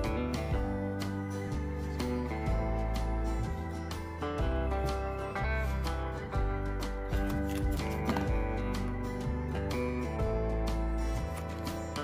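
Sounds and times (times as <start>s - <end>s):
instrumental background music: 0.0s - 12.0s.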